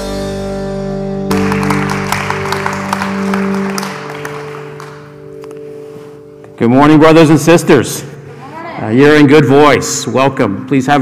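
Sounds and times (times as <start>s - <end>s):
band holding a chord: 0.0s - 8.4s
congregation applauding: 1.3s - 5.6s.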